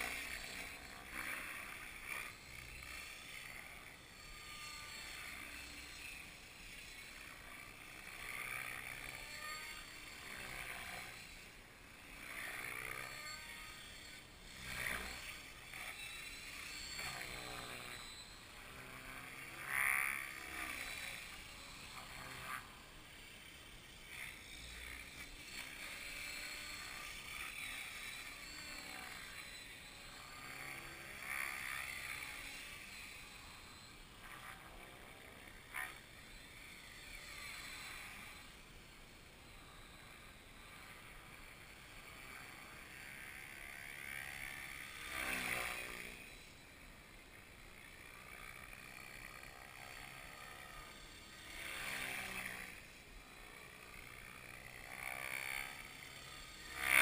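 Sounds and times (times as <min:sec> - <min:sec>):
helicopter flying overhead: 0:00.0 - 0:57.0.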